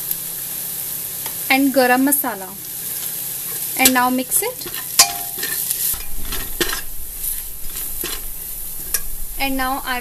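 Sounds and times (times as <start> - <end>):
onions sizzling in hot oil: 0.0 - 10.0
metal ladle scraping pot: 4.6 - 9.9.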